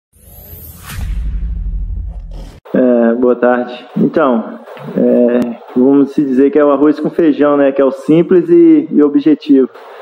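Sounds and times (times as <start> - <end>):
whoosh: 0.1 - 2.6.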